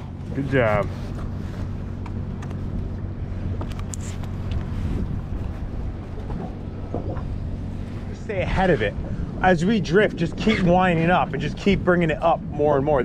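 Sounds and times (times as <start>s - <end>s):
outboard motor idling: 0.0s - 10.0s
wind on microphone: 0.0s - 13.0s.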